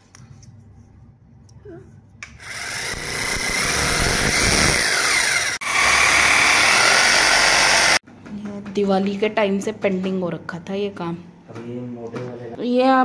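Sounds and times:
electric drill boring into wall: 0:02.4 - 0:08.0.

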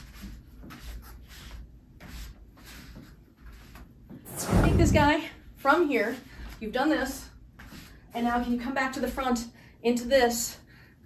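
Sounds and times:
low soft thumps: 0:04.3 - 0:05.3.

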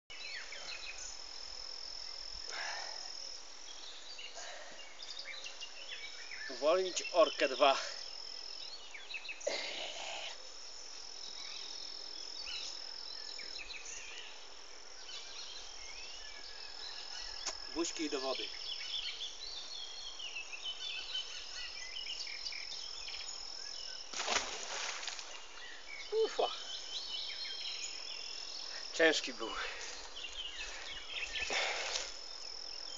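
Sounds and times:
insects droning: 0:00.1 - 0:32.9
rustling: 0:24.1 - 0:25.7
bird chirps: 0:25.2 - 0:32.9.

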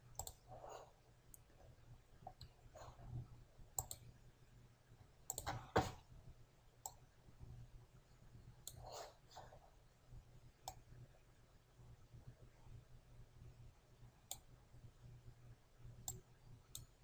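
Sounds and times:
low steady hum: 0:00.0 - 0:17.0
faint computer mouse clicks: 0:00.2 - 0:00.4, 0:03.8 - 0:04.0, 0:16.0 - 0:16.9.

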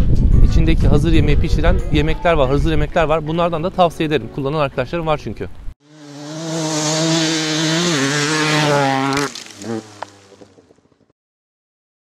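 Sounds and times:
motorcycle engine revving: 0:05.8 - 0:10.8.

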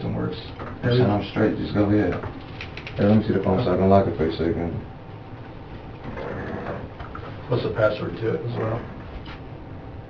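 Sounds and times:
low room background noise: 0:00.0 - 0:10.0.

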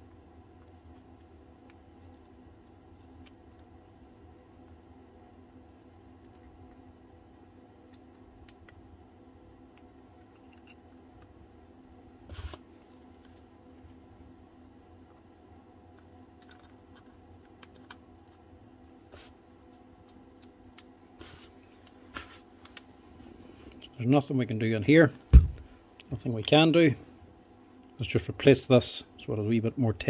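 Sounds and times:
knock: 0:25.3 - 0:25.6.

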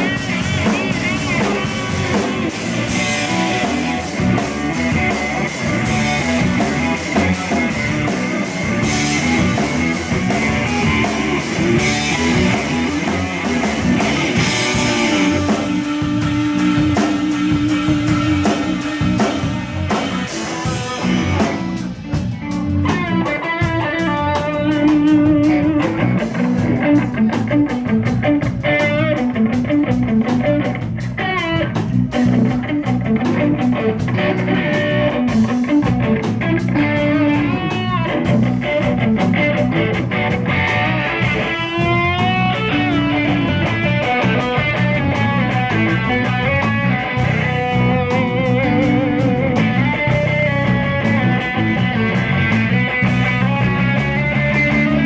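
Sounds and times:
drum kit beat: 0:00.0 - 0:55.0
electric guitar lead: 0:00.0 - 0:55.0.

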